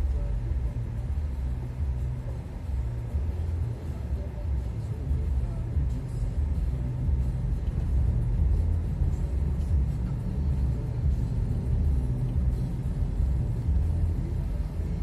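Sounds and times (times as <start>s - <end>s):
car engine and tyres rumbling: 0.0s - 15.0s.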